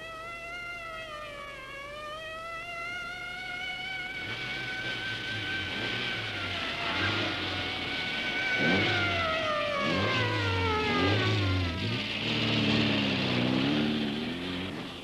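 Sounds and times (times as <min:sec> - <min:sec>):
police siren wailing: 0:00.0 - 0:14.8
car engine and tyre noise: 0:00.0 - 0:15.0.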